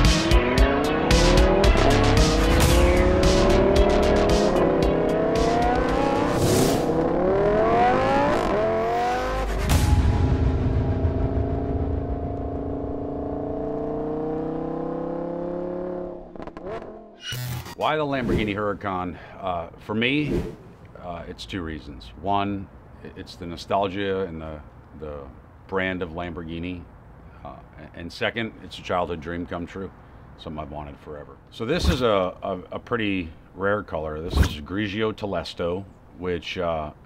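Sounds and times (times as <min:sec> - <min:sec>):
music with a beat: 0:00.0 - 0:06.2
sports car engine accelerating: 0:00.0 - 0:17.1.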